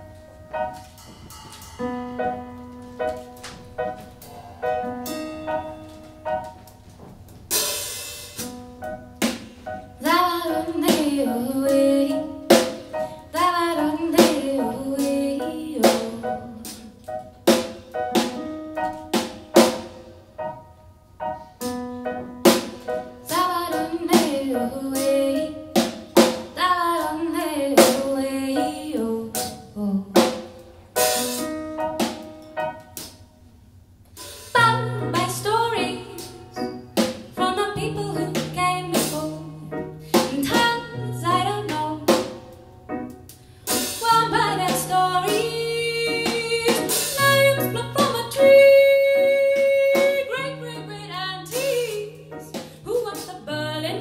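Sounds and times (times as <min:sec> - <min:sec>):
drum kit beat: 0:00.0 - 0:20.6, 0:21.6 - 0:27.1, 0:30.2 - 0:33.2, 0:34.1 - 0:53.5
electric keyboard chords: 0:00.0 - 0:33.7, 0:34.6 - 0:54.0
person singing: 0:10.0 - 0:17.1, 0:44.0 - 0:54.0.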